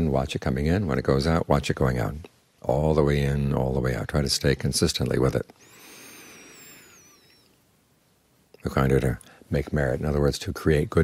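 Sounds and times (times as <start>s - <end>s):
faint background noise: 0.0s - 11.0s
high whistles gliding down: 5.8s - 7.6s.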